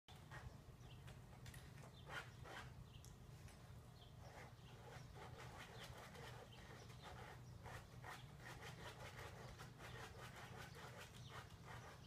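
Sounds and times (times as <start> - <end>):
dog scratching at metal frame: 1.9 - 2.8, 4.2 - 12.0.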